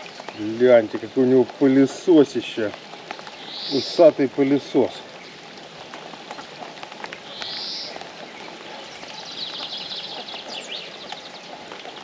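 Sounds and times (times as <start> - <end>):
rain falling steadily: 0.0 - 12.0
raindrop ticks: 0.0 - 12.0
bird singing: 2.0 - 5.4, 7.2 - 12.0.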